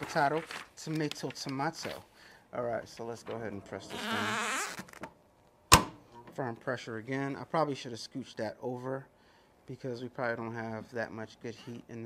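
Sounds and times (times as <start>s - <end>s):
heat press clacking shut: 5.7s - 6.1s.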